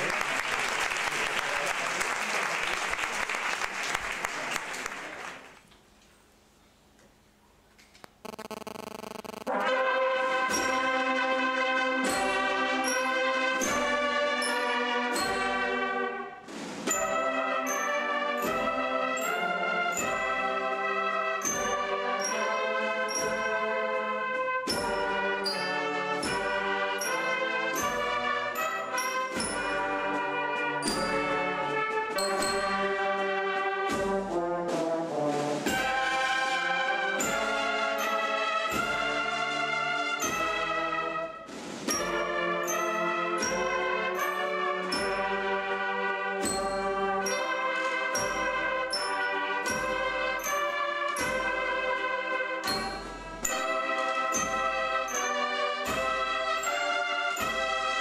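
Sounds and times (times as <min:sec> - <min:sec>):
brass band playing: 0:09.3 - 0:58.0
steady drum beat: 0:33.8 - 0:36.4, 0:48.1 - 0:52.0.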